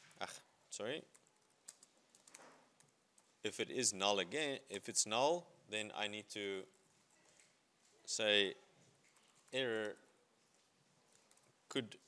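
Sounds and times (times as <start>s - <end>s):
faint keyboard typing: 0.8s - 3.6s, 6.6s - 8.0s, 8.8s - 12.0s.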